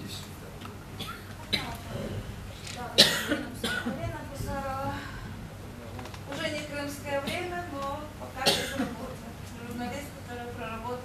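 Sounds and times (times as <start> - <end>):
person coughing: 3.0 - 3.9, 8.4 - 9.0.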